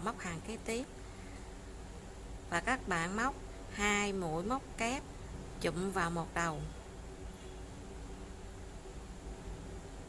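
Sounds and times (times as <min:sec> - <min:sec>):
low background hiss and rumble: 0:00.0 - 0:10.0.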